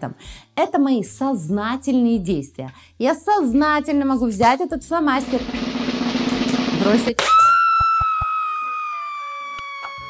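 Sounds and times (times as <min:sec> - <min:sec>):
glitchy electronic burst: 0:05.2 - 0:07.2.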